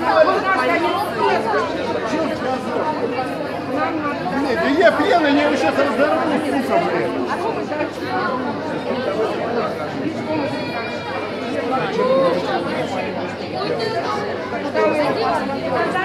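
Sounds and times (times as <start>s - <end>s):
crowd talking and arguing: 0.0s - 16.0s.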